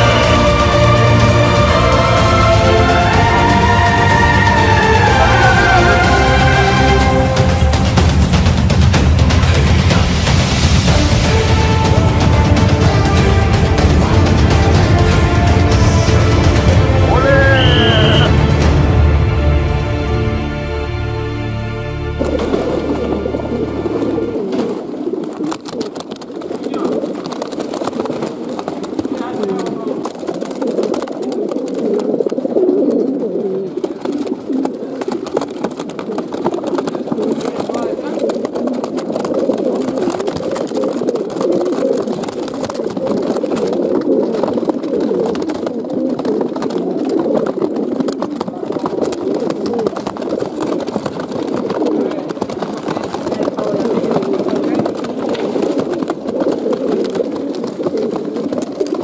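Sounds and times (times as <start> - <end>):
pigeons cooing: 0.0 - 19.8, 22.1 - 59.0.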